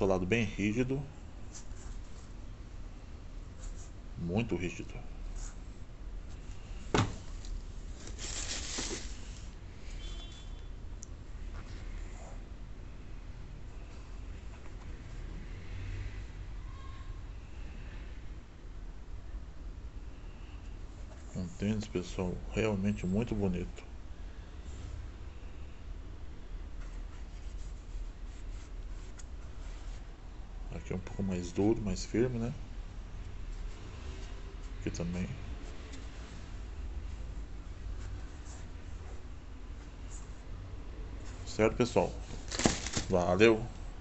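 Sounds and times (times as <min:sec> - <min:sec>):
tissue paper rustling: 0:07.0 - 0:09.6, 0:41.2 - 0:43.7.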